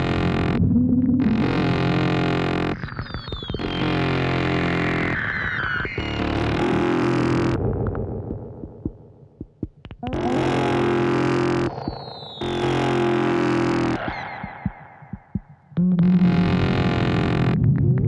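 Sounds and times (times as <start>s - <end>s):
scattered clicks and crackles: 0.0s - 10.2s, 11.6s - 12.6s
harsh distorted synthesizer noise: 0.0s - 18.0s.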